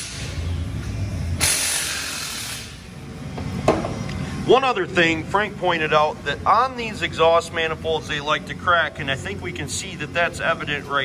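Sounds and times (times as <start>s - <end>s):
low hum: 0.0s - 1.9s.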